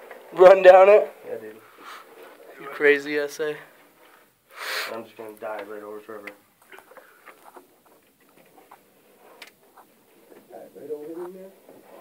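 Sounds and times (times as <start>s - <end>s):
scuffs and light taps: 5.2s - 12.0s.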